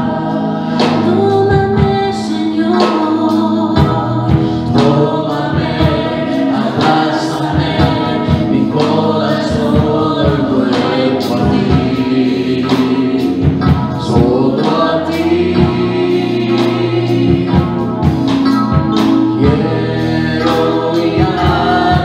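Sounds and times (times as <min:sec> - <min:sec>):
woman singing into a microphone: 0:00.0 - 0:15.9, 0:19.4 - 0:22.0
instrumental accompaniment: 0:00.0 - 0:22.0
steady drum beat: 0:00.0 - 0:22.0.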